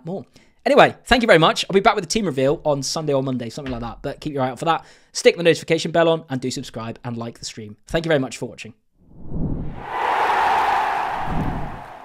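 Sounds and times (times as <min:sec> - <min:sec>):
rushing swell of noise: 0:09.4 - 0:12.0.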